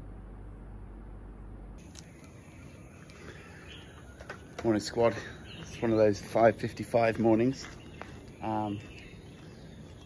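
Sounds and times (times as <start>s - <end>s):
faint low hum: 0.0s - 4.6s.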